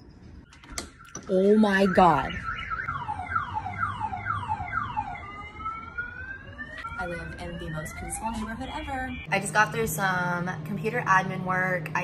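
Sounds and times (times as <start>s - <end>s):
electronic siren: 0.4s - 9.3s.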